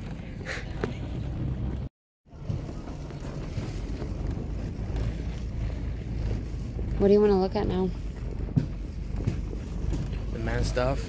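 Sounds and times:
microphone rubbing while walking: 0:02.3 - 0:11.0.

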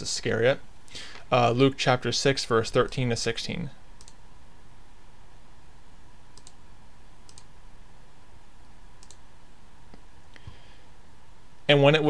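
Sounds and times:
steady low hiss: 0:00.0 - 0:12.0
computer mouse clicks: 0:04.0 - 0:04.2, 0:06.4 - 0:06.6, 0:07.3 - 0:07.5, 0:09.0 - 0:09.2.

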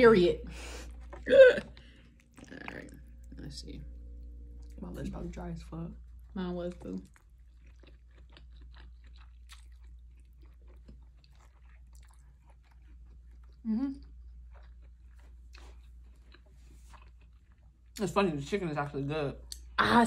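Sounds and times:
low steady hum: 0:00.0 - 0:20.0
person chewing spaghetti: 0:00.6 - 0:03.4, 0:06.0 - 0:18.0.

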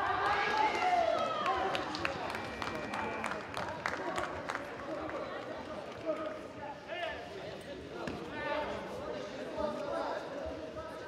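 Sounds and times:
voices shouting in a hall: 0:00.0 - 0:04.0.

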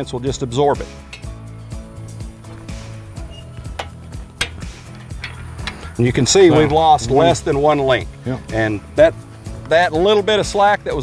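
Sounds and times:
background music: 0:00.0 - 0:11.0
metallic clicks of fence stretcher: 0:02.5 - 0:06.0.

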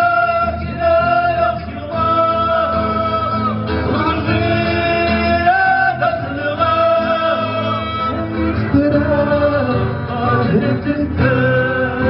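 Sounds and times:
acoustic guitars playing: 0:00.0 - 0:12.0
man singing: 0:00.0 - 0:12.0.

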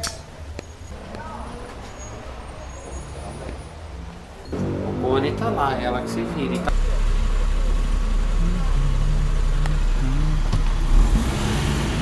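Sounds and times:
low rumble: 0:04.5 - 0:11.3
faint voices: 0:06.1 - 0:10.8.

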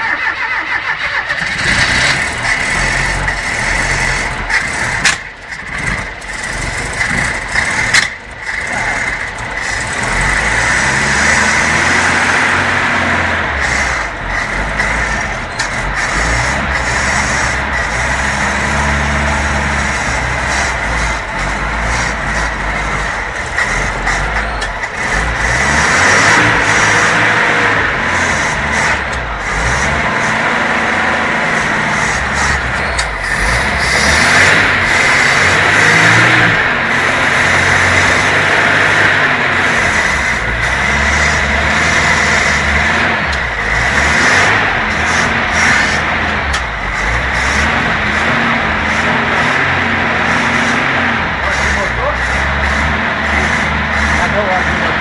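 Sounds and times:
car engine starting and revving: 0:00.0 - 0:55.0.

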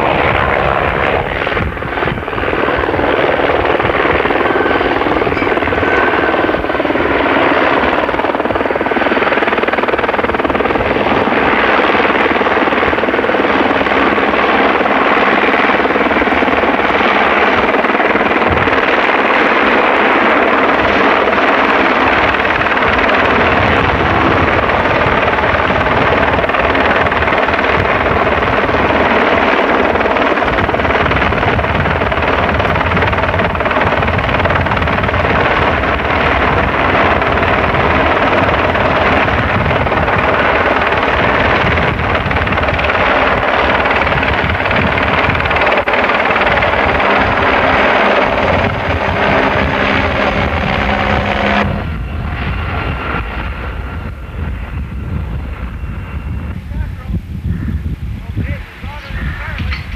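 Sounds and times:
helicopter rotor and engine: 0:00.0 - 0:59.9.

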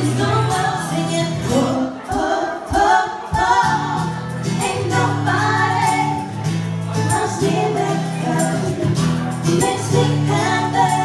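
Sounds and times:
acoustic guitar: 0:00.0 - 0:11.0
women singing in harmony: 0:00.0 - 0:11.0.

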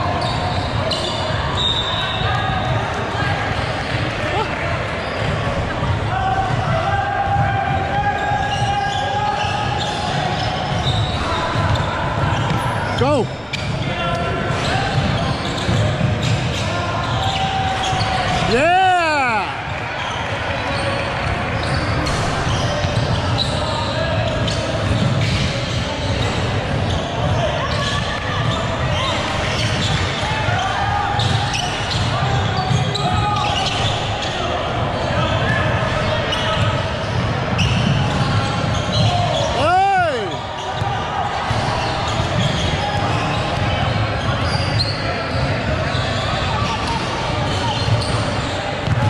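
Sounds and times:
indistinct voices in echoing hall: 0:00.0 - 0:49.0.

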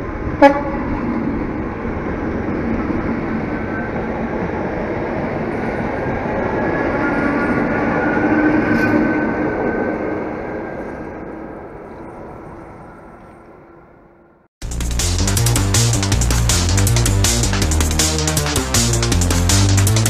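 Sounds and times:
train wheels rolling on rails: 0:00.0 - 0:14.3.

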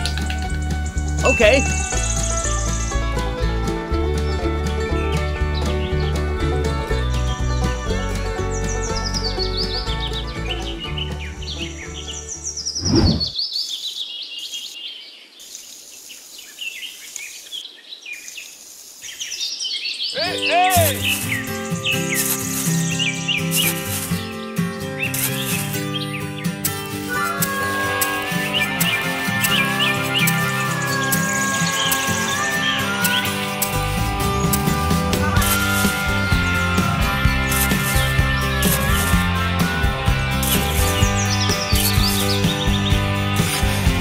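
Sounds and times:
background music: 0:00.0 - 0:12.6, 0:20.2 - 0:44.0
birds chirping: 0:00.0 - 0:44.0.

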